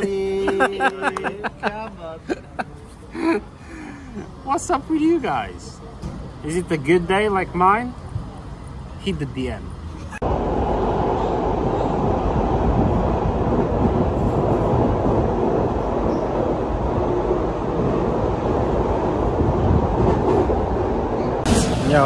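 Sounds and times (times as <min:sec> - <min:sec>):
train rumbling and rattling: 0:09.8 - 0:22.0.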